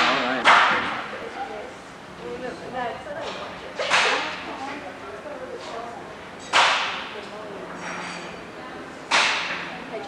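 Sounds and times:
loud sharp cracks in echoing room: 0:00.0 - 0:01.0, 0:03.9 - 0:04.4, 0:06.4 - 0:07.2, 0:09.1 - 0:09.6.

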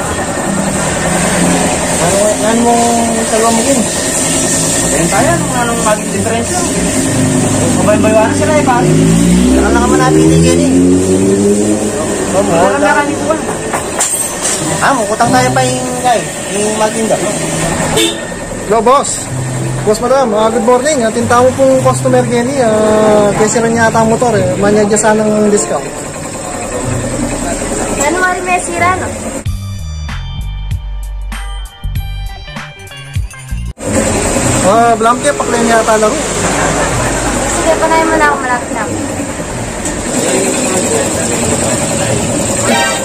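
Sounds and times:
engine idling: 0:14.8 - 0:29.4.

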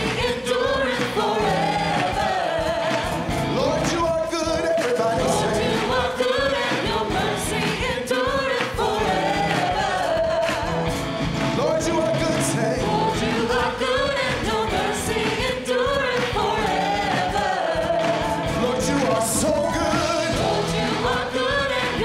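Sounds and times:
band accompaniment: 0:00.0 - 0:22.0
man singing gospel: 0:03.5 - 0:05.8, 0:11.5 - 0:13.1, 0:18.5 - 0:20.7.

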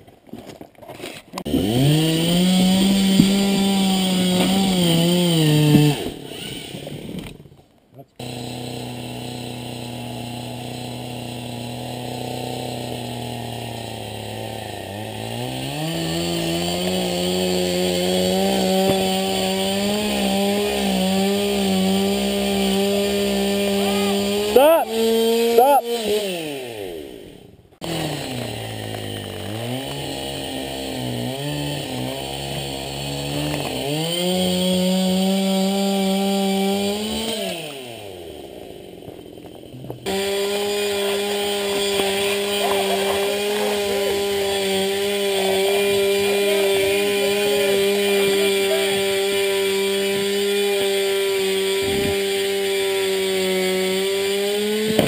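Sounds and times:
chainsaw engine revving: 0:01.0 - 0:07.4, 0:08.2 - 0:55.0.

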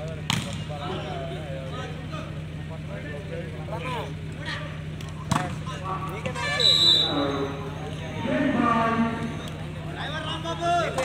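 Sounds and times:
steady low hum: 0:00.0 - 0:11.0
volleyball smack: 0:00.3 - 0:00.6, 0:05.3 - 0:05.6
shrill tone: 0:06.5 - 0:07.8.

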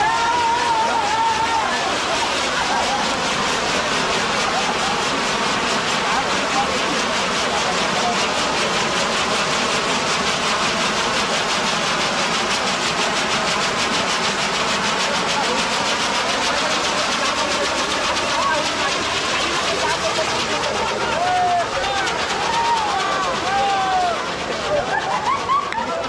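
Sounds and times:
crowd voices: 0:00.0 - 0:26.0
fireworks hissing and crackling: 0:00.0 - 0:26.0.

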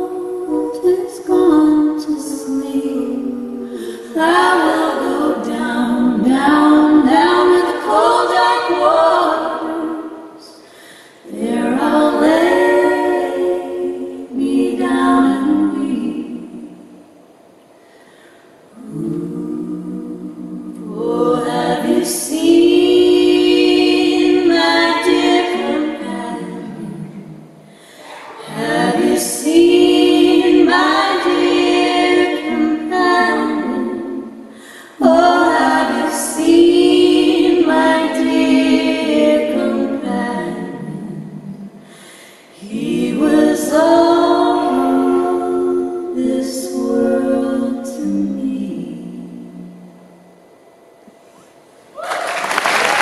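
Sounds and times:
women singing a cappella harmony: 0:00.0 - 0:17.3, 0:17.9 - 0:50.7.

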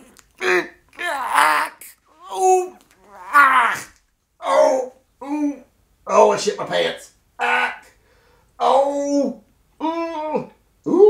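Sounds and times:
man moaning in pain: 0:00.4 - 0:05.6.

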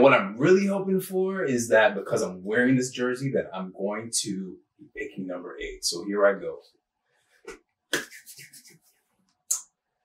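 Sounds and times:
palms rubbing together: 0:07.3 - 0:09.2
hand clap: 0:07.9 - 0:08.8.

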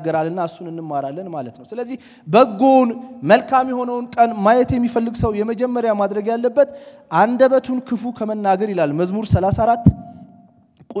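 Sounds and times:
man preaching: 0:00.0 - 0:11.0
dull low thumps: 0:09.3 - 0:10.4.

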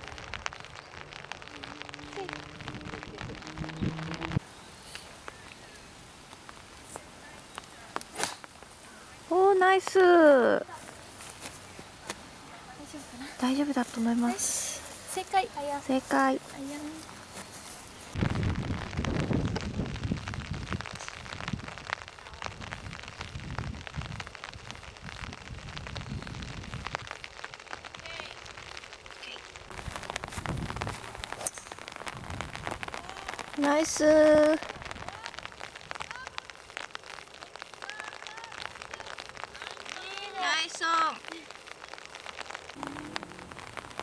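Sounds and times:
rain pattering: 0:00.0 - 0:44.0.

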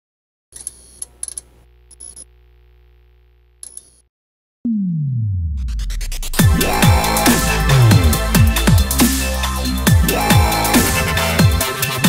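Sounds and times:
synthesized low drone: 0:04.7 - 0:11.0.

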